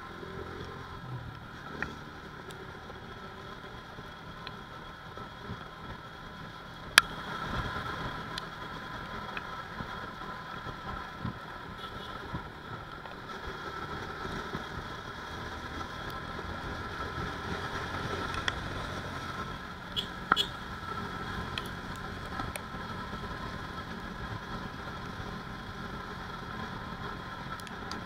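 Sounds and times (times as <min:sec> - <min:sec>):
motorcycle engine: 0:00.0 - 0:28.0
wind and road noise: 0:00.0 - 0:28.0
faint ticks: 0:09.2 - 0:09.9, 0:21.5 - 0:22.6.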